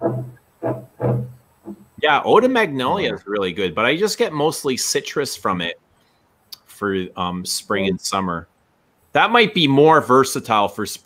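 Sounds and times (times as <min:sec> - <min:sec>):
man's low voice on one pitch: 0:02.0 - 0:05.8, 0:06.6 - 0:08.5, 0:09.2 - 0:11.0.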